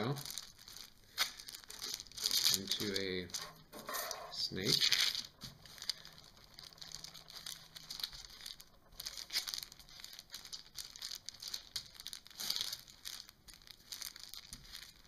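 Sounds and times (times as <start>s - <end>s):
paper rustling under palm: 0.3s - 15.0s.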